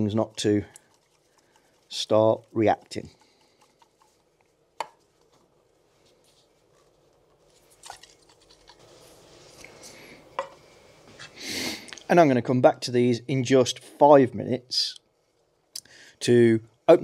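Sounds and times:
liquid sloshing in tins: 7.3 - 9.8.

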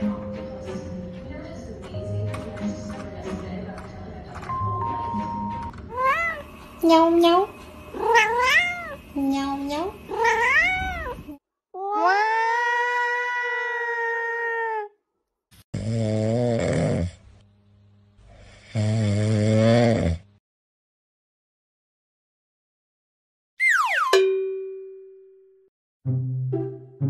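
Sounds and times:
cat meowing: 5.9 - 6.4, 7.9 - 9.0, 10.1 - 14.9
cat yowling: 5.9 - 6.5, 8.0 - 9.0, 10.1 - 11.2, 11.8 - 15.0.

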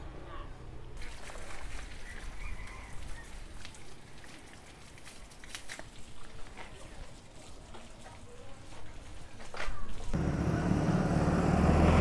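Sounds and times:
hose water spattering: 1.0 - 8.3.

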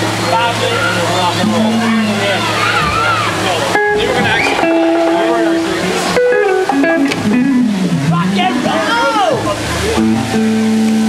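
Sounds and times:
electric guitar sliding in pitch: 1.3 - 11.0.

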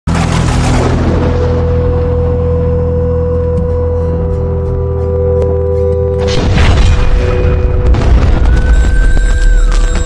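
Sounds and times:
sustained music drone: 0.1 - 10.0
deep cinematic boom hit: 6.2 - 10.0.

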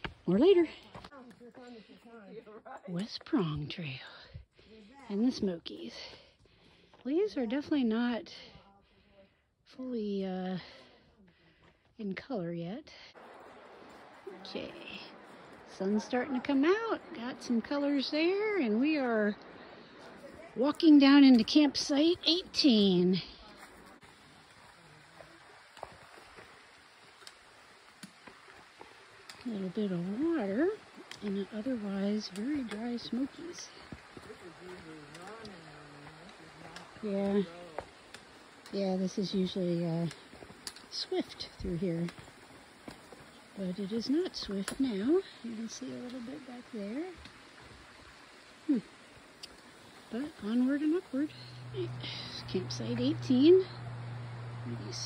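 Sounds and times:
steady background hiss: 13.2 - 55.0.

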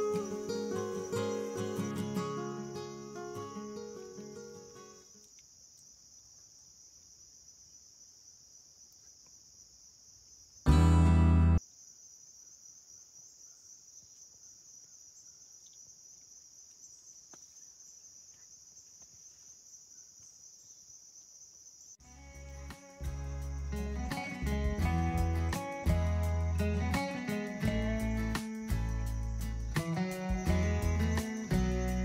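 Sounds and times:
insect chorus: 0.0 - 10.7, 11.6 - 32.0.

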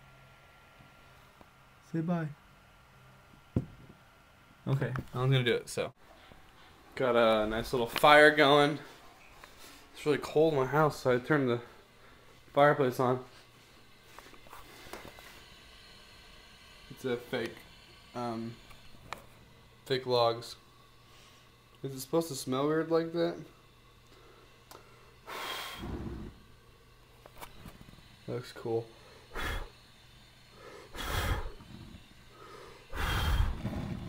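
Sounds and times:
gas fire flames hissing: 4.8 - 34.0
short sharp breath: 30.6 - 31.6, 32.4 - 33.8.

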